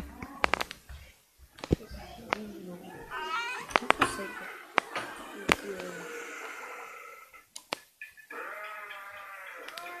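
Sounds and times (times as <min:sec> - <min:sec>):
cat meowing: 0:03.0 - 0:04.6
sharp clicks: 0:07.5 - 0:10.0.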